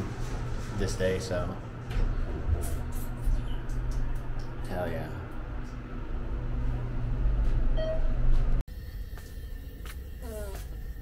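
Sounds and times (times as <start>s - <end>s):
elevator low rumble: 0.0s - 10.2s
short electronic beep: 7.8s - 8.2s.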